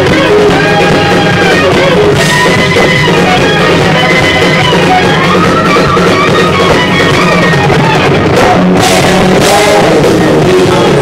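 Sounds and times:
live rock band playing: 0.0s - 11.0s
man singing into microphone: 8.2s - 11.0s.

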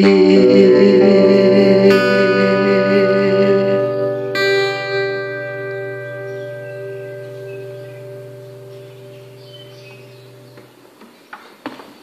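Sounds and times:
guitar chord ringing: 0.0s - 10.7s.

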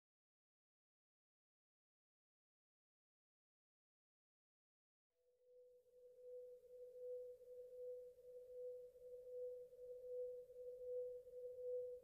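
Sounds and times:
faint pulsing musical tone: 5.4s - 12.0s.

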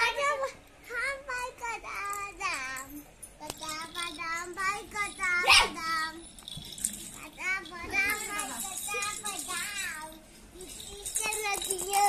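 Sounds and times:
child singing: 0.9s - 6.3s, 7.2s - 12.0s.

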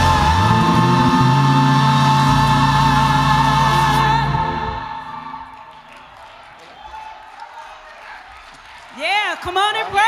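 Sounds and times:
gospel group singing with instruments: 0.0s - 5.7s.

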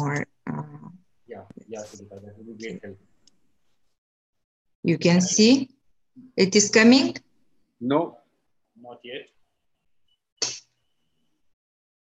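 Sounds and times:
person speaking quietly: 1.6s - 2.9s.

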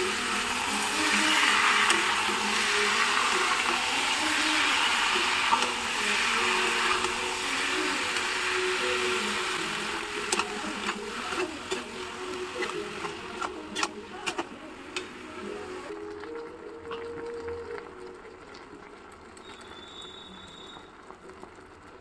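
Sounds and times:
prawns sizzling in hot oil: 0.0s - 22.0s.

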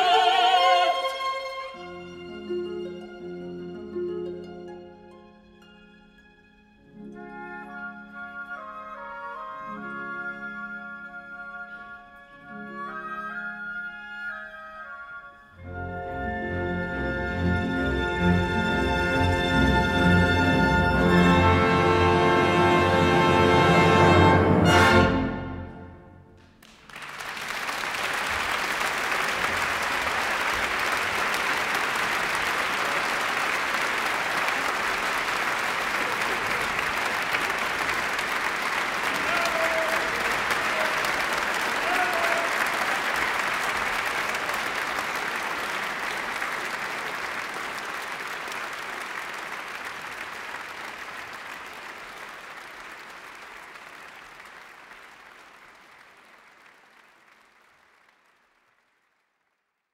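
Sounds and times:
audience applauding: 0.0s - 1.5s, 26.4s - 59.6s.

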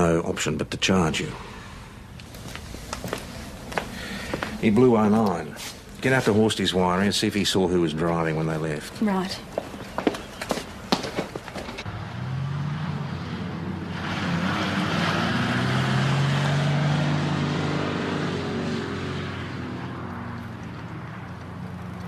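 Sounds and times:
car driving by: 11.8s - 22.0s.

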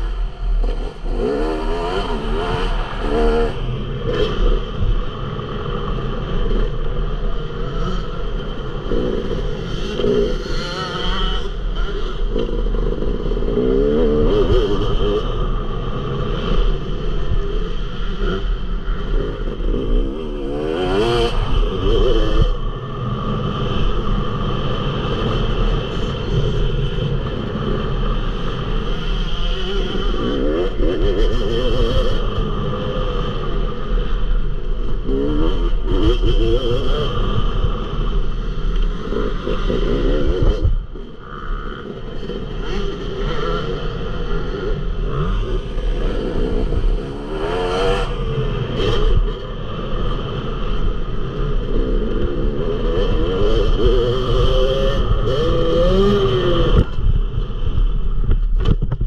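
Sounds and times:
motocross bike engine revving: 0.0s - 57.7s.

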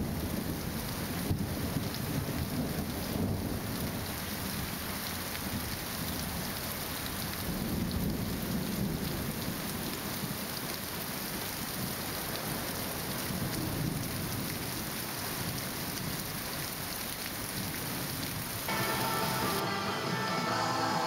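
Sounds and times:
steady rain: 0.0s - 21.0s.

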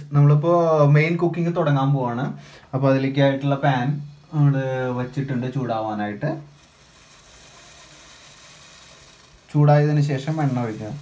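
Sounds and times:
pot hissing on stove: 2.4s - 11.0s.

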